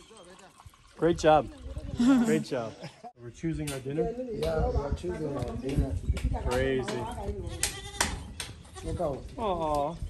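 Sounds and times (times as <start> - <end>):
goats bleating: 7.4 - 9.0.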